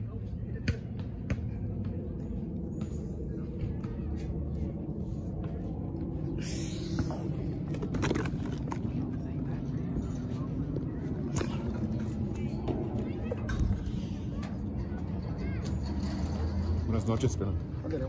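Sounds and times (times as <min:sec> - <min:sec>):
low rumble of handled phone: 0:01.1 - 0:16.9.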